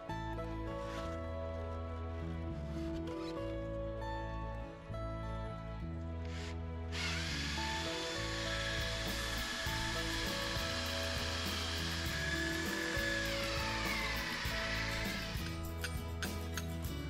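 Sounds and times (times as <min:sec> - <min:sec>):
background music: 0:00.0 - 0:17.0
cordless drill boring wood: 0:06.3 - 0:16.9.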